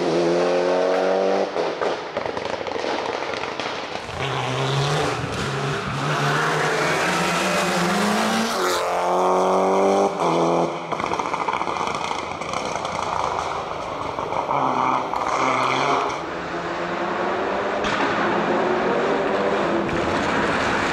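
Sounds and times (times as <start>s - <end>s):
car engine at full throttle: 0.0s - 20.9s
exhaust cracks: 10.2s - 16.3s.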